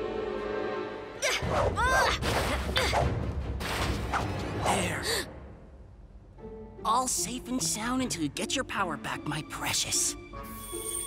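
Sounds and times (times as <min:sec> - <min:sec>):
low background score: 0:00.0 - 0:11.0.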